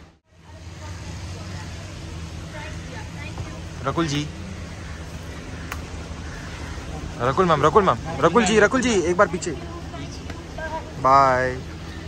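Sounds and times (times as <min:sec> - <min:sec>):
faint distant voices: 0:00.0 - 0:12.0
vehicle engine humming: 0:00.0 - 0:12.0.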